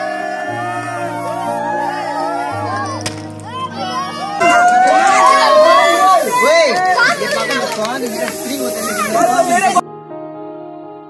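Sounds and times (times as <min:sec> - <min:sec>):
boys shouting and cheering: 0:00.0 - 0:09.8
aerosol spray cans hissing: 0:04.9 - 0:09.8.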